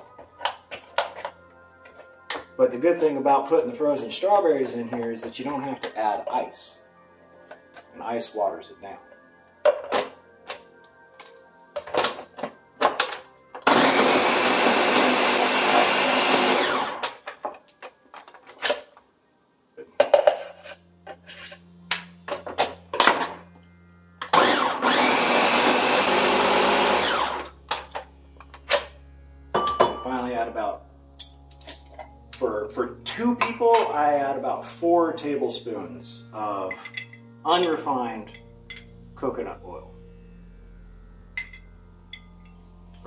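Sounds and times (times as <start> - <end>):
blender running: 13.6 - 17.2, 24.2 - 28.1.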